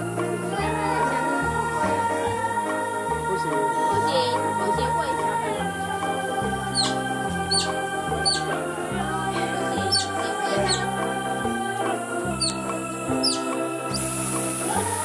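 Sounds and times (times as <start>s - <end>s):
music with sustained notes and bass: 0.0s - 15.0s
high chirps sliding downward: 6.6s - 8.6s, 9.6s - 11.0s, 12.3s - 14.2s.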